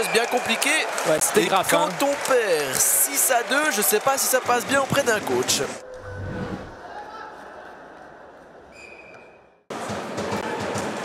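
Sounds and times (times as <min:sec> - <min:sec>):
crowd at ice rink: 0:00.0 - 0:06.0, 0:06.6 - 0:11.0
ice rink arena noise: 0:00.0 - 0:06.0, 0:06.6 - 0:11.0.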